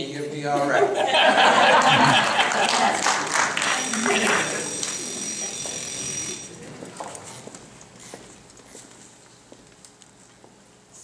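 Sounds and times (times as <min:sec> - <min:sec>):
audience laughter: 0:00.7 - 0:04.6
applause: 0:01.8 - 0:05.2
thin high tone: 0:03.6 - 0:06.6.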